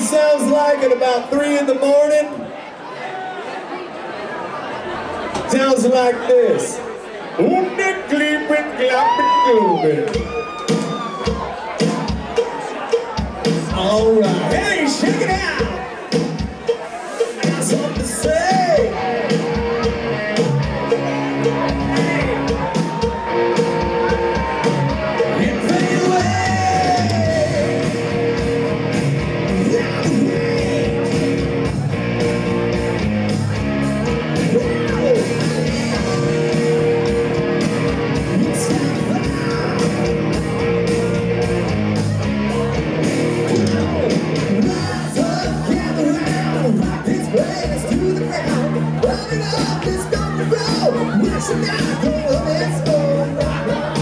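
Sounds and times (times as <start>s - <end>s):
rock band playing live: 10.0s - 54.0s
person singing: 16.7s - 28.2s, 29.5s - 31.5s, 38.2s - 40.2s, 43.5s - 54.0s.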